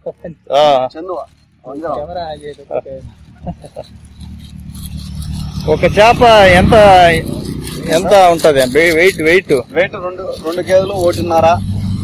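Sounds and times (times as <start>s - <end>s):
man talking: 0.0s - 3.1s, 5.7s - 11.6s
vehicle engine running: 0.0s - 12.0s.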